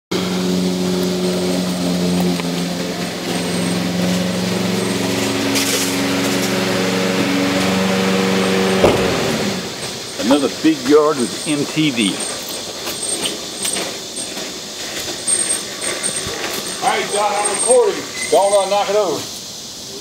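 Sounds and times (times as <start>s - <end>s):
lawn tractor engine running: 0.1s - 19.0s.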